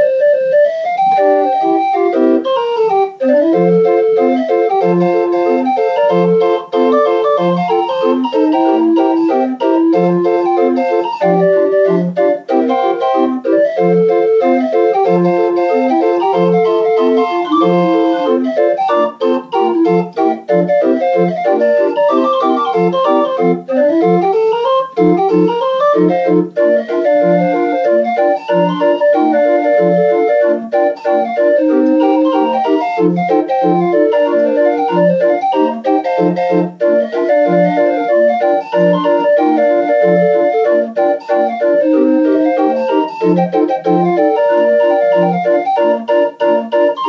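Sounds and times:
street organ playing a tune: 0.0 - 47.0.

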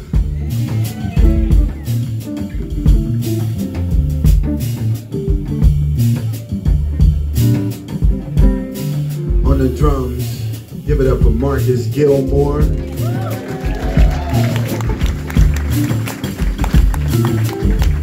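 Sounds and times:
electric guitar: 0.0 - 9.4, 12.6 - 18.0
drum kit and cymbals: 0.0 - 18.0
electric bass: 0.0 - 18.0.

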